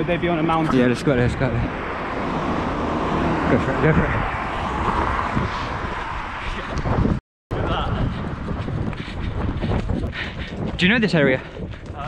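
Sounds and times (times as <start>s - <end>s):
road traffic rushing past: 0.0s - 11.7s.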